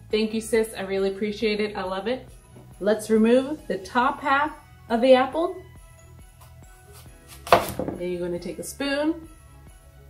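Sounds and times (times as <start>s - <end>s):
soft background music: 0.0s - 10.0s
knife cutting apple: 6.4s - 8.0s.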